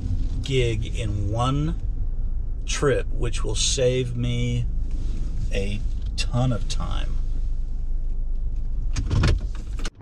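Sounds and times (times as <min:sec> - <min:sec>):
van engine hum inside cabin: 0:00.0 - 0:10.0.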